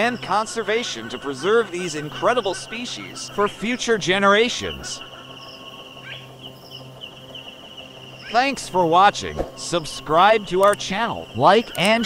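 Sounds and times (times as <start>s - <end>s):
insect chirping trill: 0.0s - 12.0s
low steady hum: 0.0s - 12.0s.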